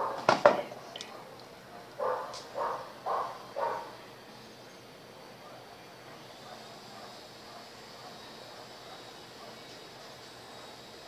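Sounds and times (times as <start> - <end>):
animal calling: 1.1 - 4.0.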